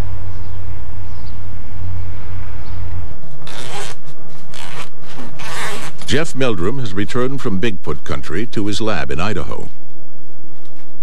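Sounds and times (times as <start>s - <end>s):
zipper pulled open: 3.4s - 6.1s.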